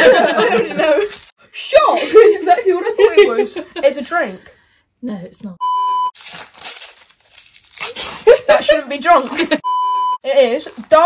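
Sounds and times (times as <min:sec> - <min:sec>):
wrapping paper tearing and crumpling: 0:00.8 - 0:01.4, 0:06.2 - 0:09.5, 0:10.6 - 0:11.0.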